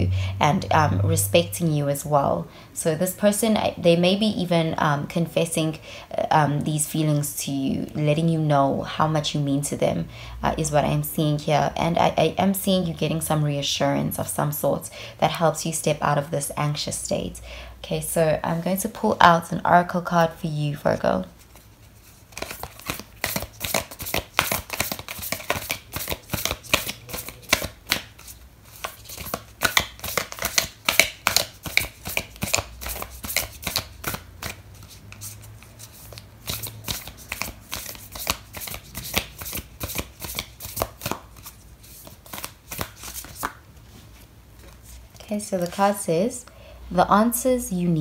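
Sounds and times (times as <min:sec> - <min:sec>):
cards being shuffled by hand: 0:21.4 - 0:45.1.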